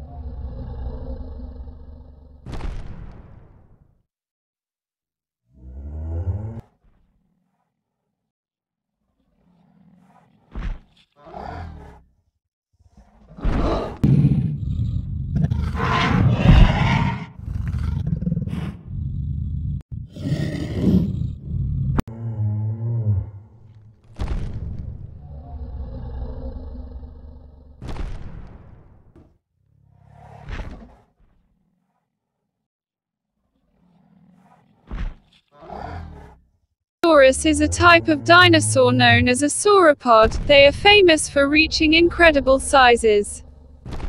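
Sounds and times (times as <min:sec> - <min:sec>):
dinosaur roars and growls: 0:00.0 - 0:02.7, 0:05.5 - 0:07.9, 0:09.1 - 0:12.2, 0:12.8 - 0:28.2, 0:29.7 - 0:32.3, 0:33.4 - 0:36.6, 0:43.4 - 0:44.0
low steady dinosaur call: 0:22.0 - 0:23.6.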